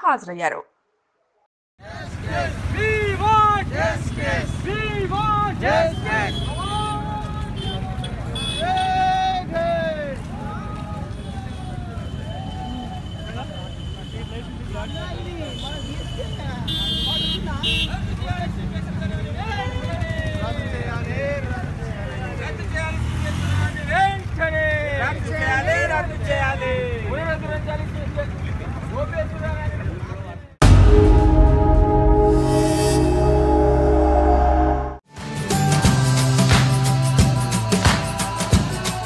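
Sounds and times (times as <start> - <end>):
crowd chanting slogans: 1.8 - 6.4
protesters shouting a slogan: 1.8 - 12.8
street traffic rumbling: 1.8 - 39.0.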